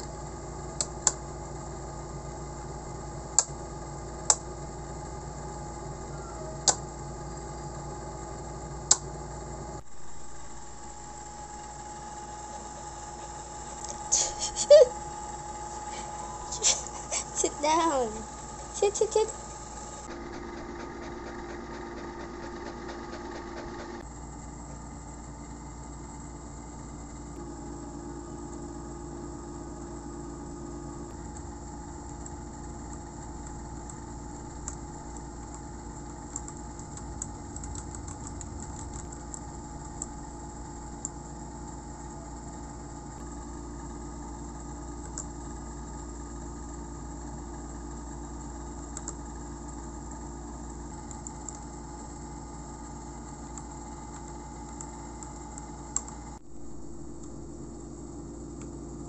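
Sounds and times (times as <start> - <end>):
steady machine hum: 0.0 - 59.0.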